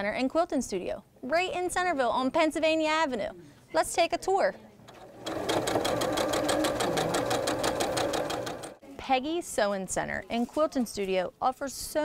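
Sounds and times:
sewing machine running: 4.9s - 8.8s.

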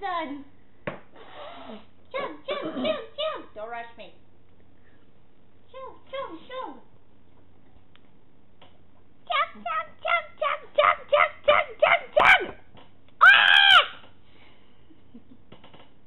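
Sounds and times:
short rhythmic yelps: 9.3s - 14.0s.

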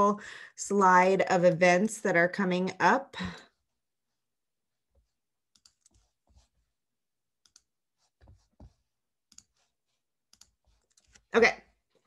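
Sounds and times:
faint computer mouse and key clicks: 5.5s - 6.0s, 7.4s - 7.7s, 10.3s - 11.2s.

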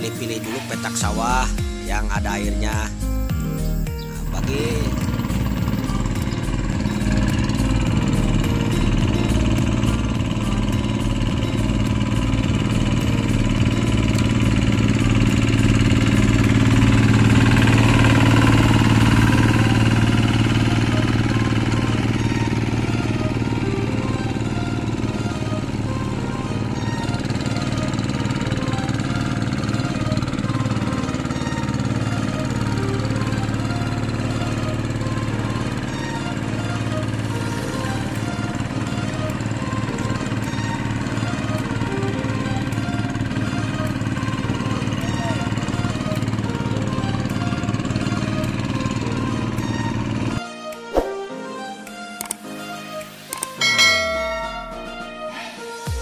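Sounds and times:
diesel engine running: 0.0s - 50.4s
background music: 0.0s - 56.0s.

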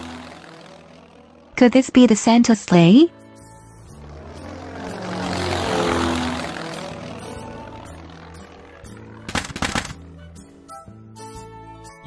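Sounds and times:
propeller aircraft flying over: 0.0s - 11.9s
background music: 0.0s - 12.0s
clatter of knocks: 9.3s - 10.0s.

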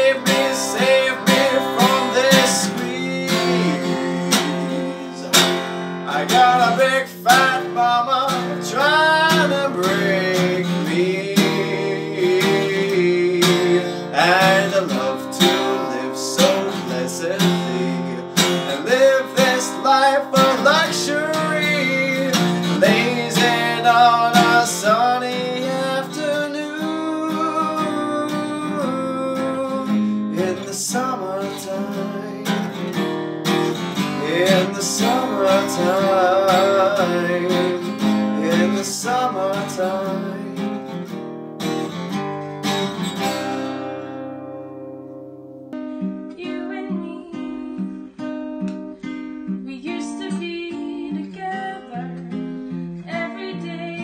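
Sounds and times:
man singing: 0.0s - 41.1s
strummed acoustic guitar: 0.0s - 54.0s.

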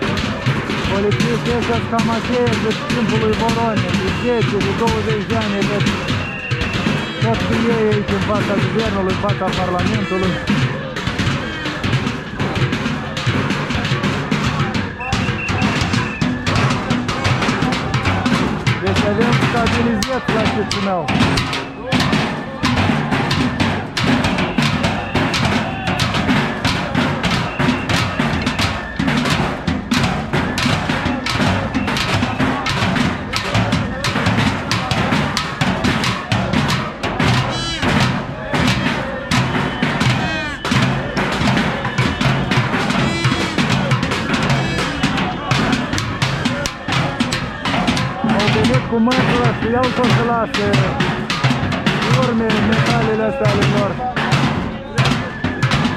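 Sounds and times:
sticks drumming on barrels: 0.0s - 55.9s.

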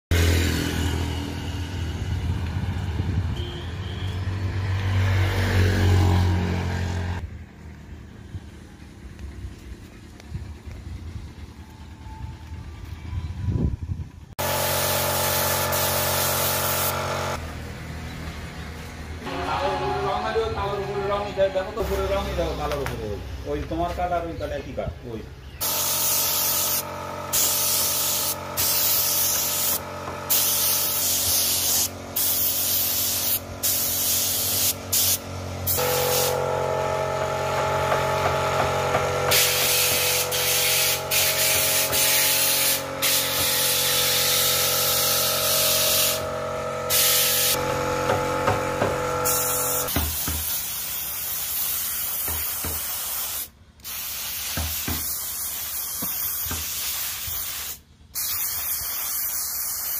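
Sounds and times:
machine hum: 8.6s - 18.1s, 35.2s - 49.9s
spray gun hissing: 14.4s - 17.4s, 25.6s - 36.6s, 39.3s - 47.6s, 49.1s - 59.9s.

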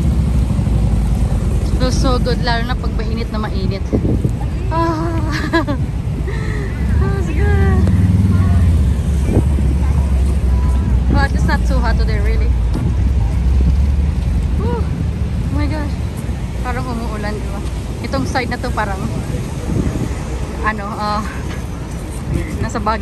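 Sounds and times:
bus passing: 0.0s - 23.0s
motorcycle passing: 0.0s - 23.0s
passers-by talking: 0.0s - 23.0s.

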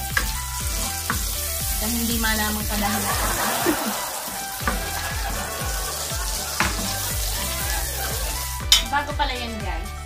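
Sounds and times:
onion sizzling in oil: 0.0s - 8.9s
background music with a beat: 0.0s - 10.0s
spatula knocking pot: 0.1s - 1.4s, 6.6s - 7.5s.

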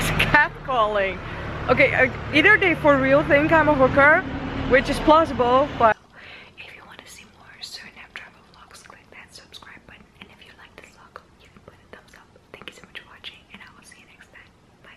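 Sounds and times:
woman whispering: 5.9s - 14.9s.

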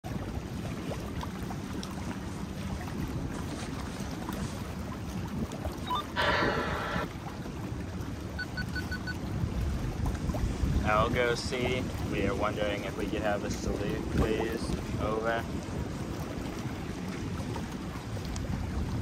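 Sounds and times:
water washing against boat: 0.0s - 19.0s
wind on microphone: 0.1s - 19.0s
quick high beeps: 5.8s - 7.0s, 8.4s - 9.2s.

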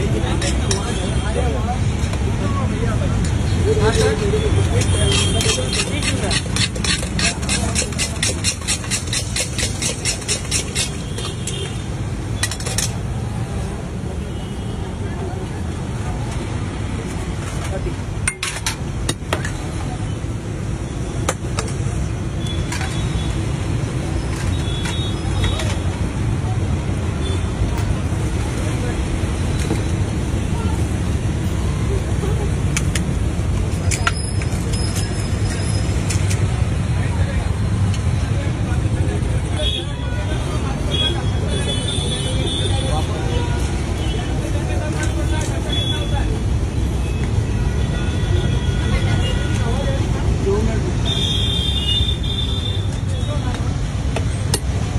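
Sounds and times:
voices: 0.0s - 20.6s, 21.2s - 54.9s
street traffic: 0.0s - 54.9s.

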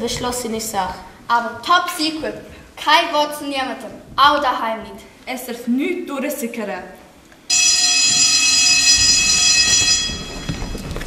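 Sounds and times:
school bell ringing: 7.5s - 11.0s
shuffling footsteps on stage: 8.8s - 11.0s.

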